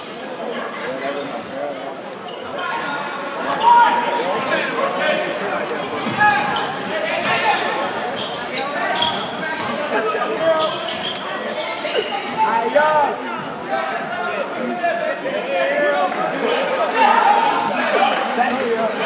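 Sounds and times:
spectators' voices echoing: 0.0 - 19.0.

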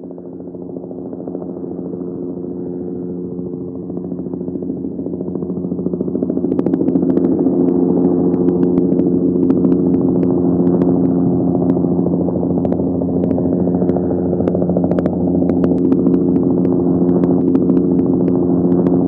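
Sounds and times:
helicopter engine and rotor: 0.0 - 19.0.

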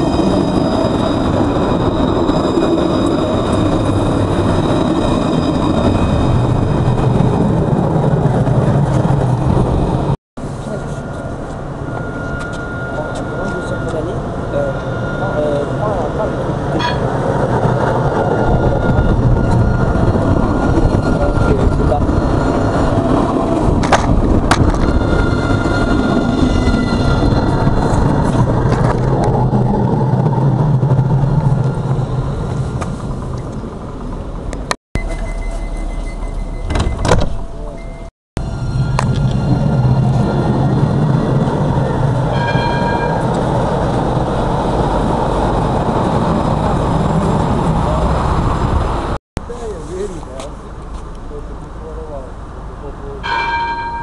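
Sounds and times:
rail rumble: 0.0 - 54.0
tram traction hum: 0.0 - 54.0.

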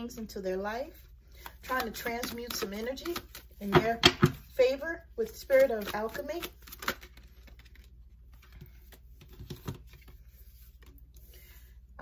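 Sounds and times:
cards being handled: 1.3 - 4.5, 5.2 - 11.1.

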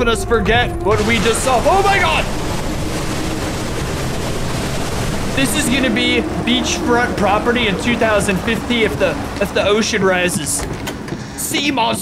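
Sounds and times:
steady rushing rumble: 0.0 - 11.6.

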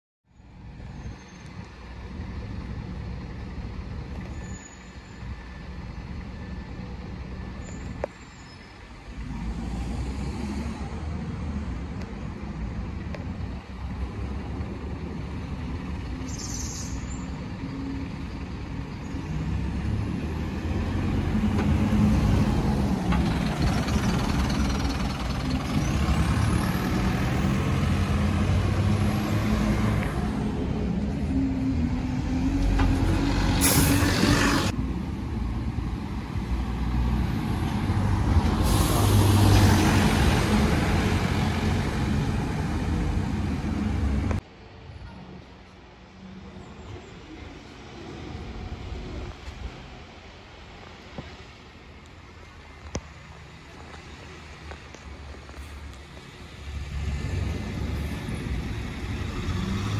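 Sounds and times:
bus engines running: 0.3 - 59.9
bus pulling away: 0.4 - 59.9
air-brake hiss: 38.5 - 39.5.

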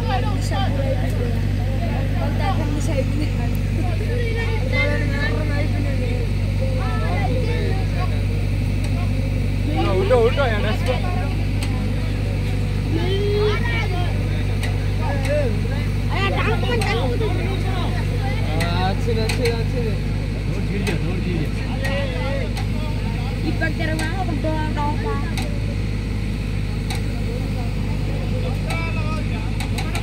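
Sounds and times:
diesel engine running: 0.0 - 30.0
voices calling out: 0.0 - 30.0.

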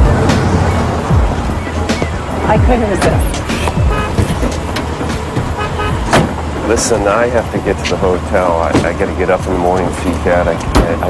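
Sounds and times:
background music: 0.0 - 11.0
road traffic rumble: 0.0 - 11.0.

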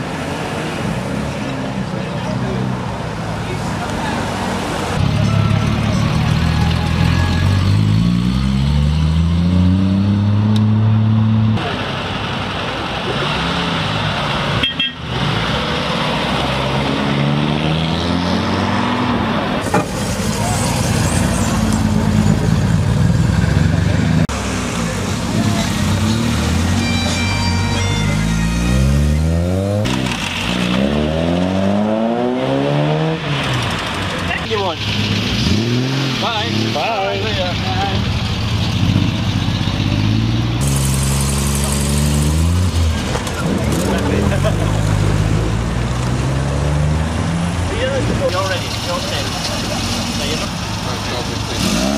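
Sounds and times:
car engines revving and pulling away: 0.0 - 51.9.

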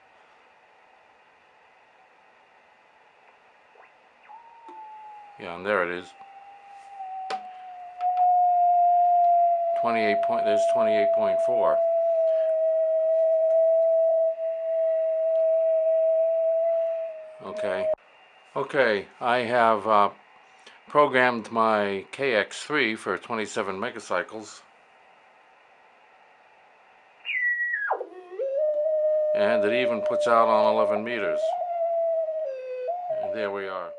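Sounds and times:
whistling beat note: 3.8 - 18.0, 27.2 - 33.9
steady radio beat tone: 9.6 - 12.5, 17.3 - 18.0, 29.4 - 31.6.

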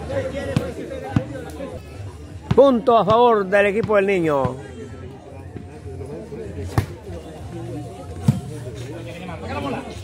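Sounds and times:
low crowd chatter: 0.0 - 10.0.

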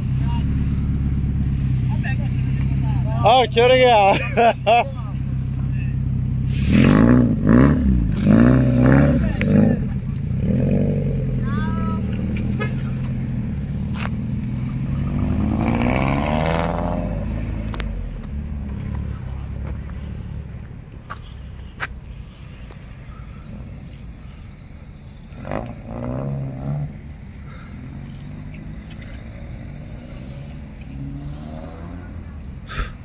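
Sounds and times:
car engine idling and revving: 0.0 - 33.0.

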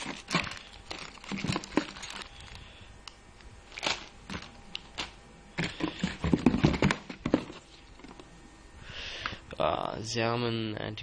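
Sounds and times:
plastic bags crinkling: 0.0 - 2.7, 3.6 - 8.3.

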